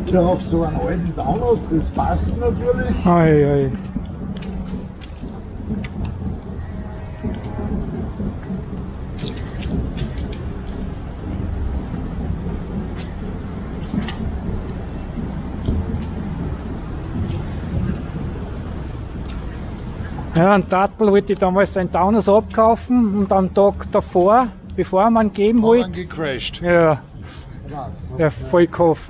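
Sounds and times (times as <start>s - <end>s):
low outdoor rumble: 0.0s - 29.0s.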